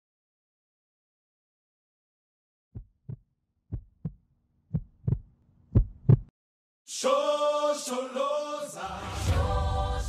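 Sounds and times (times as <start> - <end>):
heartbeat double thumps: 2.8 - 6.3.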